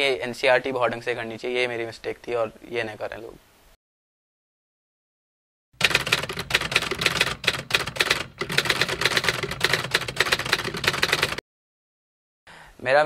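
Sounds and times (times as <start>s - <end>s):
typewriter key clacks: 5.8s - 11.4s.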